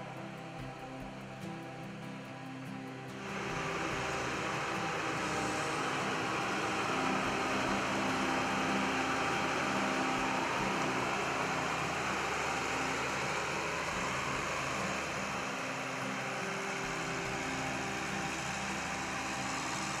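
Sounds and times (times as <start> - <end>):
diesel engine running: 3.1 - 20.0
rushing hiss: 3.1 - 20.0.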